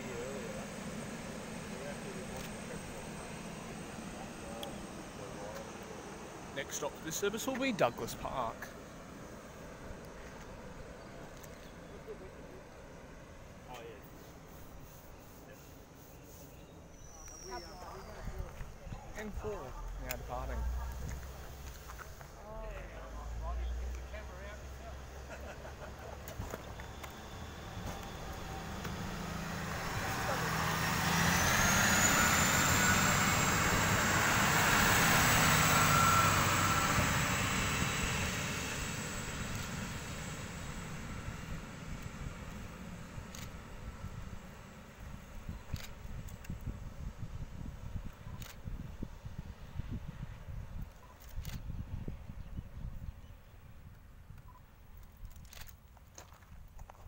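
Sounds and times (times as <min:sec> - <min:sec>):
diesel railcar engine rumble: 0:00.0 - 0:54.6.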